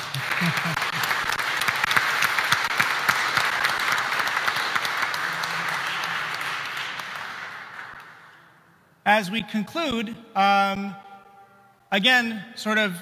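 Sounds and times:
crowd applauding: 0.0 - 8.4.

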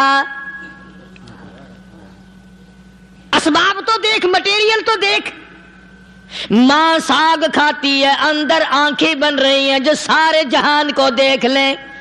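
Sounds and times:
steady low hum: 0.0 - 12.0
man's voice with ringing echo: 6.5 - 12.0.

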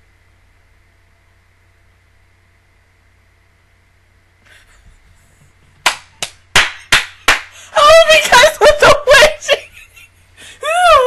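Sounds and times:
high-pitched excited laughter: 7.8 - 11.0.

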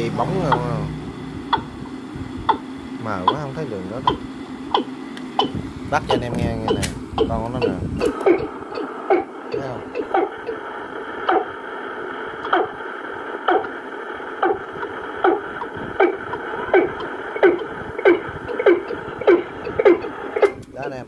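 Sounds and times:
tape hiss and hum: 0.0 - 21.0.

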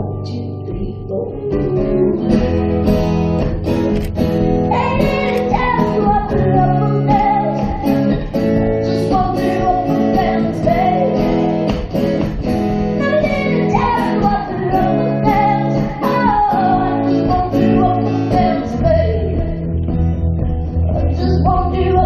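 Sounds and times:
strummed guitar chords: 0.0 - 22.0
woman singing with vibrato: 4.7 - 11.6, 13.0 - 19.6, 20.9 - 22.0.

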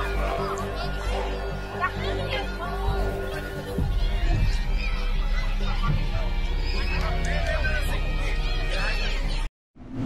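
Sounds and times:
people shouting excitedly: 0.0 - 9.5
background music with drone: 0.0 - 10.0.

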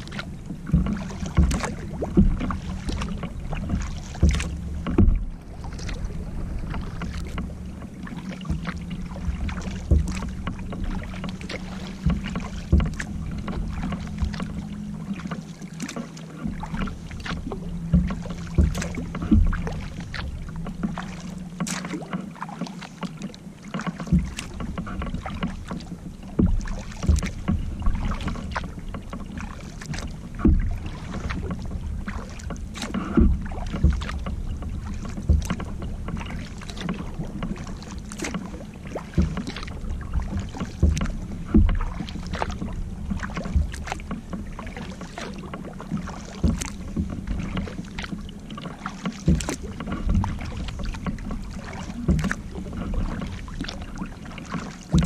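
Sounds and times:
kayak paddle strokes in water: 0.0 - 55.0
low steady hum: 0.0 - 55.0
water dripping from paddle: 0.0 - 55.0.

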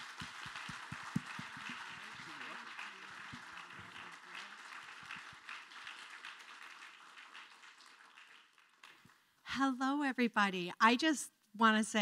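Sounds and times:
audience applauding: 0.0 - 9.3.

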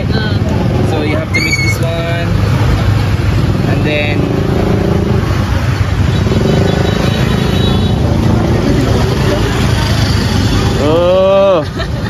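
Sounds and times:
motorbikes and cars passing: 0.0 - 12.0
voices chattering: 0.0 - 12.0.

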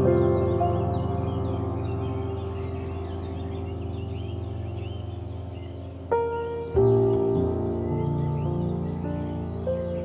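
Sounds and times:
ambient held chord: 0.0 - 10.0
bird chirps: 0.0 - 10.0.

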